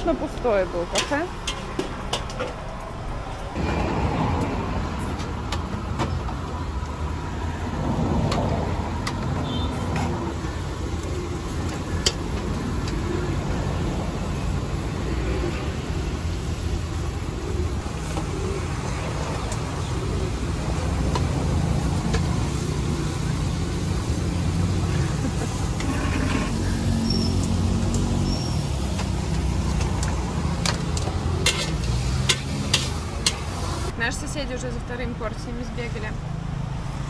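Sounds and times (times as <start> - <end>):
low rumble of street traffic: 0.0 - 37.0.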